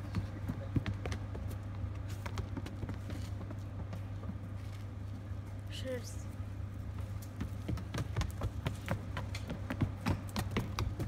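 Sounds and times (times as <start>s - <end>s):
hooves clicking on hard floor: 0.0s - 4.9s, 6.9s - 11.0s.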